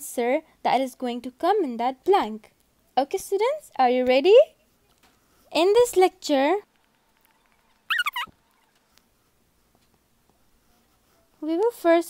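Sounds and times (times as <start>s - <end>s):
high-pitched two-part call: 7.9s - 8.3s.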